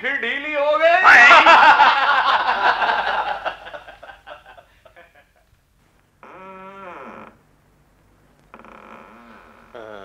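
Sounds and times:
door hinges creaking: 8.5s - 10.0s.

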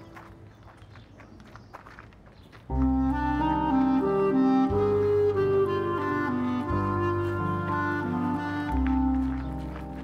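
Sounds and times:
footsteps on paved path: 0.0s - 10.0s
outdoor background noise: 0.0s - 10.0s
music cue: 2.7s - 10.0s.

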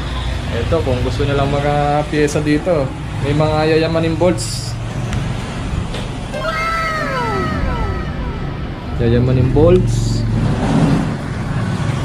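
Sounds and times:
meow-like cry: 6.4s - 8.8s.

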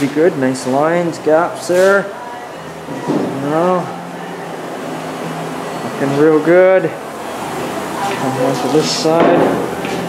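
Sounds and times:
air-handling equipment hum and hiss: 0.0s - 10.0s
faint music: 0.0s - 10.0s.

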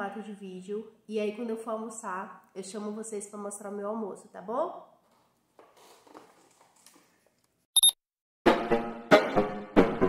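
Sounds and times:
high-pitched electronic beep: 7.8s - 8.0s.

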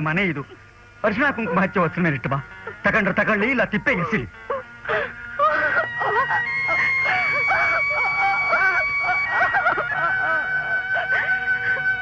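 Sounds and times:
mournful film score: 1.3s - 12.0s.

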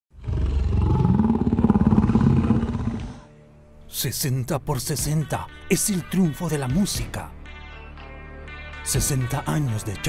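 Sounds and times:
deep rough roar: 0.1s - 3.3s.

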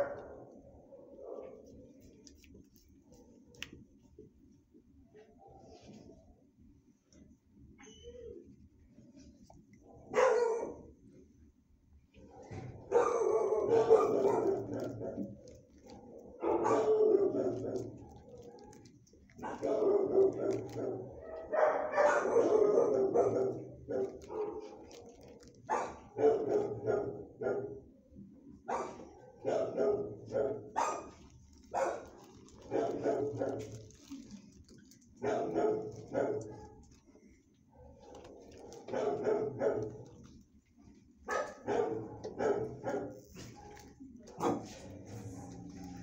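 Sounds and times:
dogs barking: 0.0s - 1.7s, 10.1s - 10.9s, 12.3s - 25.0s, 25.7s - 27.9s, 28.6s - 34.2s, 35.2s - 36.9s, 37.8s - 40.3s, 41.2s - 46.0s.

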